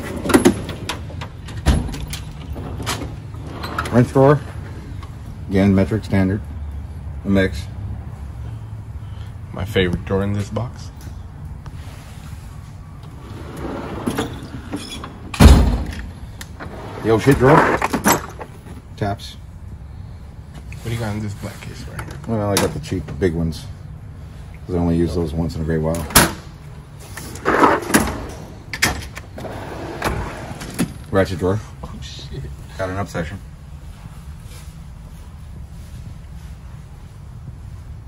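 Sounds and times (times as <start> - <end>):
metal drawer sliding shut: 0.0 - 4.8, 13.2 - 18.5, 27.2 - 31.0.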